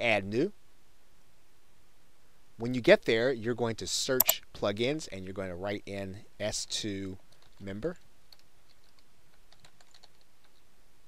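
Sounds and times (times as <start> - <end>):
computer keyboard typing: 8.3 - 10.6.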